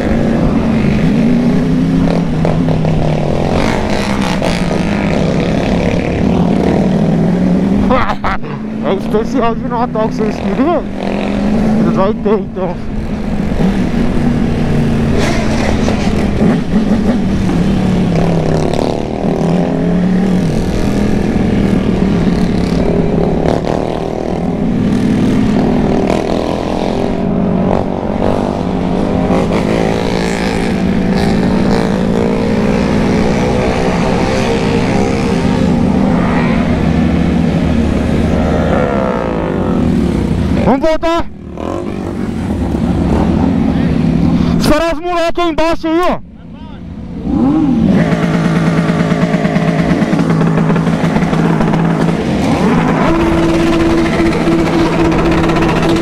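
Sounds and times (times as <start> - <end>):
motorcycle engine running: 0.0 - 40.7, 47.9 - 56.0
wind rushing over microphone: 10.5 - 40.7.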